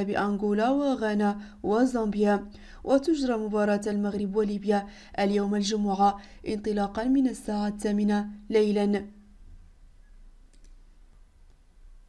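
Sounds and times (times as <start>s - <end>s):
low steady hum: 0.0s - 12.0s
faint clicks: 10.5s - 10.8s.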